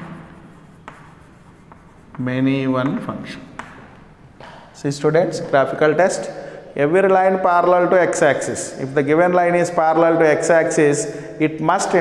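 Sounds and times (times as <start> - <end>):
chalk scratching on chalkboard: 0.0 - 3.6
chalk ticking against board: 0.0 - 3.8.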